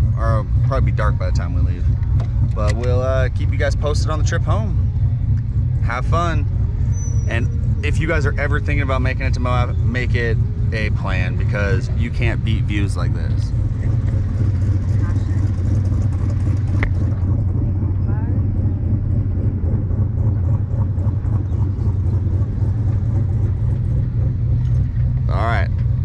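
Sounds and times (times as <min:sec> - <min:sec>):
vehicle engine droning: 0:00.0 - 0:26.0.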